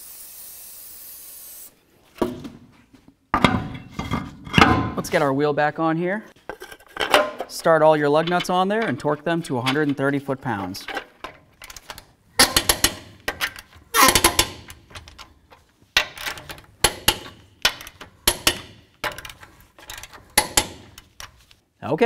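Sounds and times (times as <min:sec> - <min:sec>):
socket tool tightening lug nuts: 0:08.2 - 0:21.4.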